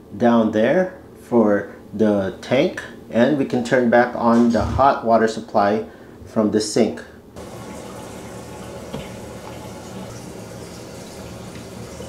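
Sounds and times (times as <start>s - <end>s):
water hissing through pipe: 7.4s - 12.0s.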